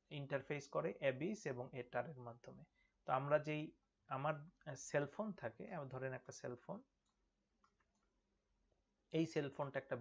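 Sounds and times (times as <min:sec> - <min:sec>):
man lecturing: 0:00.0 - 0:07.0, 0:09.1 - 0:10.0.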